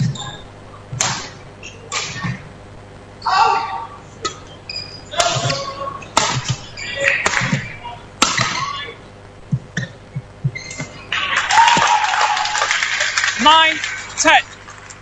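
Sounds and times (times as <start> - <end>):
rackets hitting shuttlecock: 0.9 - 2.4, 5.1 - 8.8
voices: 3.2 - 9.2.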